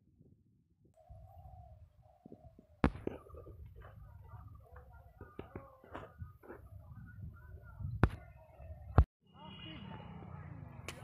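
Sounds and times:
bird calling: 1.0s - 9.0s.

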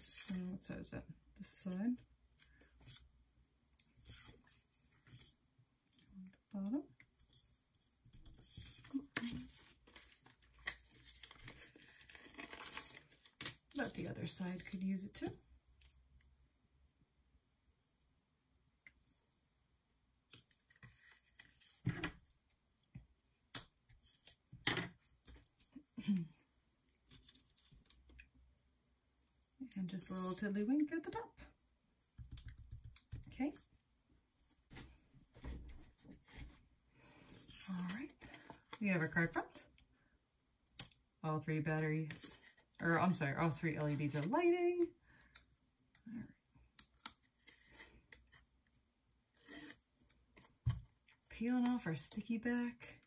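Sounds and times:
paper card rustling: 8.4s - 14.8s.

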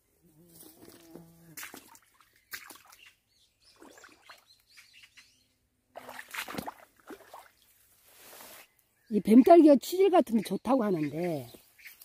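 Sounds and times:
small birds chirping: 2.0s - 5.7s, 8.4s - 12.0s
leaves and branches rustling: 6.4s - 9.6s, 10.8s - 12.0s.

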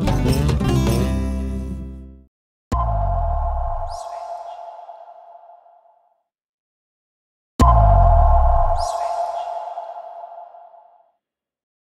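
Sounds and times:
deep electronic boom: 2.7s - 4.4s, 7.6s - 9.9s
ringing tone: 2.7s - 5.6s, 7.6s - 10.9s
high falling swoosh: 2.8s - 5.7s, 7.6s - 11.0s.

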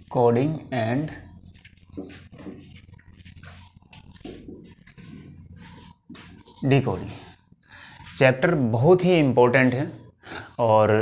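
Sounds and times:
marker squeaking on whiteboard: 0.0s - 11.0s.

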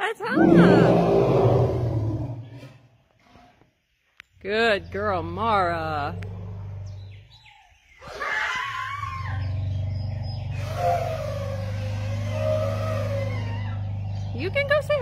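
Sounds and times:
elephant bellowing: 0.4s - 2.8s, 8.1s - 15.0s
elephant trumpeting: 8.0s - 14.9s.

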